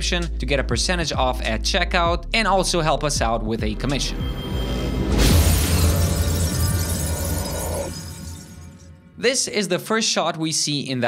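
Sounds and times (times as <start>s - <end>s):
deep bass rumble: 0.0s - 8.7s
glass shattering: 5.0s - 9.0s.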